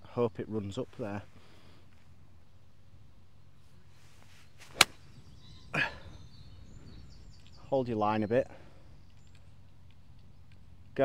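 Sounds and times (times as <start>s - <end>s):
golf club swish: 4.0s - 5.2s
club striking golf ball: 4.7s - 5.1s.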